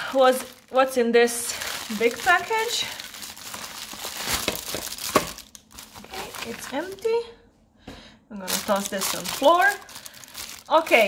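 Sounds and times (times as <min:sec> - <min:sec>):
sharp plastic crackle: 0:00.0 - 0:07.1, 0:08.4 - 0:11.0
plastic wrapping crinkling: 0:00.0 - 0:07.2, 0:08.4 - 0:11.0.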